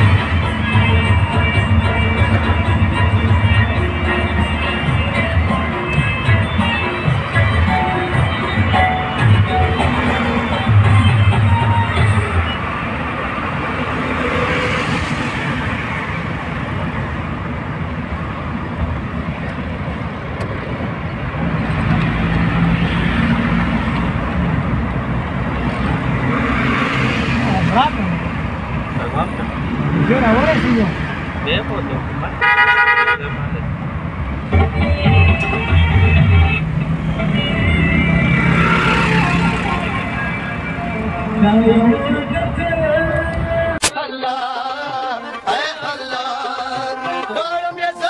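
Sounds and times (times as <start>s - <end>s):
music: 0.0s - 12.8s, 34.4s - 48.0s
vehicle engine and road noise: 0.0s - 48.0s.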